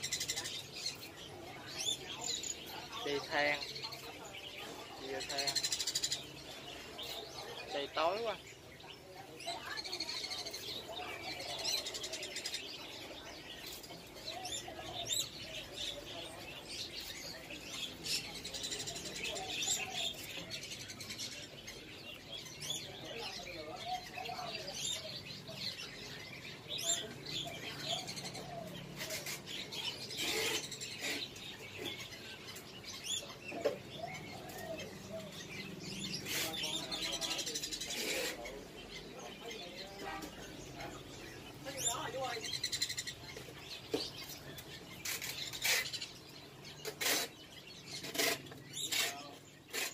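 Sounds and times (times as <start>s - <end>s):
birds chirping: 0.0s - 49.9s.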